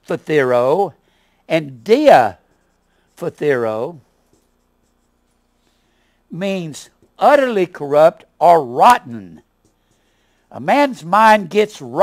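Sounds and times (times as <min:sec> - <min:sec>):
marker writing on whiteboard: 0:01.8 - 0:05.6, 0:06.7 - 0:07.6, 0:09.4 - 0:10.1.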